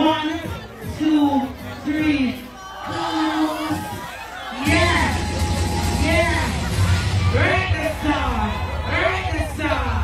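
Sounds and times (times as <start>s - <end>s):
crowd noise: 0.0s - 10.0s
party music with heavy bass: 0.0s - 10.0s
people shouting or singing: 0.0s - 10.0s.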